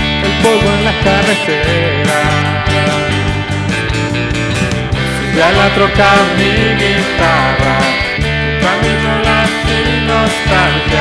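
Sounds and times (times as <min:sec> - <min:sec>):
acoustic guitar strumming: 0:00.0 - 0:11.0
electric guitar lead: 0:00.0 - 0:11.0.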